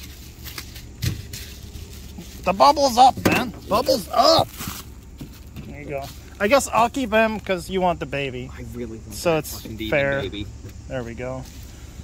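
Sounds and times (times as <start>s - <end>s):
bubble wrap crinkling: 4.4s - 5.6s.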